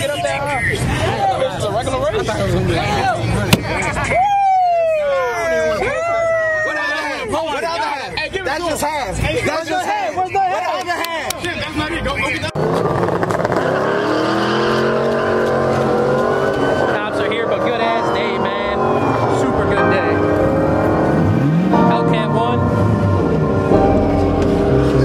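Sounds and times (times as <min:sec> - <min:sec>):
car engines running: 0:00.0 - 0:04.2, 0:11.4 - 0:25.0
engine revving: 0:12.4 - 0:25.0
voices: 0:14.7 - 0:24.0.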